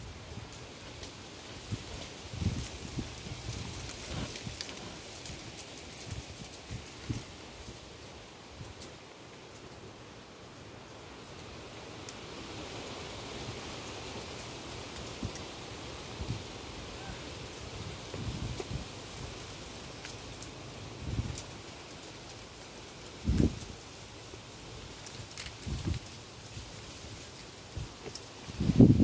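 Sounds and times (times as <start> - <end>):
soft rustling hiss: 0.0 - 29.0.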